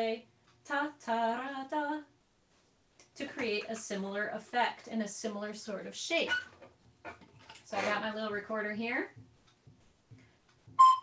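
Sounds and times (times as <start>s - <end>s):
recorder playing high note: 10.8s - 11.0s.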